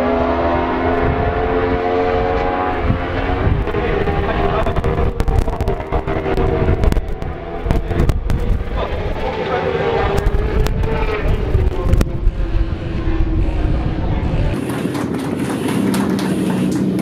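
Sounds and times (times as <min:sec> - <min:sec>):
superbike engine at high revs: 0:00.0 - 0:17.0.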